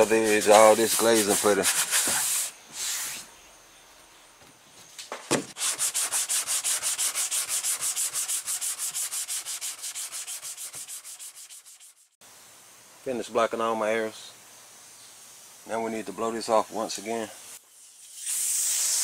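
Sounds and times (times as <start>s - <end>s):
sanding block rubbing on panel: 0.0s - 3.2s, 5.5s - 12.2s.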